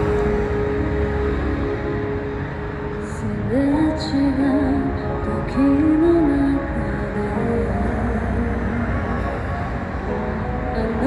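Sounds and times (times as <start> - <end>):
backing track held tone: 0.0 - 11.0
road traffic rumble: 0.0 - 11.0
woman singing: 3.1 - 8.9.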